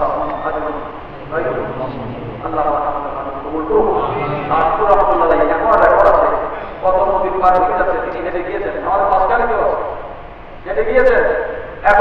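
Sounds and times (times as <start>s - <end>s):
man preaching into a microphone: 0.0s - 10.0s, 10.6s - 12.0s.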